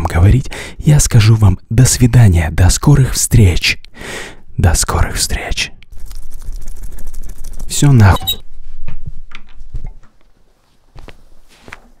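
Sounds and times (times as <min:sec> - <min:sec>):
person shuffling: 0:08.5 - 0:12.0.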